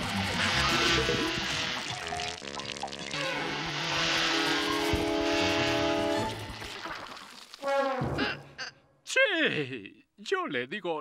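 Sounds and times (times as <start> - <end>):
buzzing motor-like whir: 0.0 - 2.5, 3.1 - 6.7
held brass note: 4.2 - 6.6.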